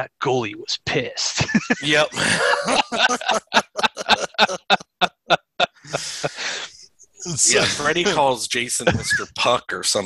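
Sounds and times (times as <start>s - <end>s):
men laughing: 1.4s - 9.6s.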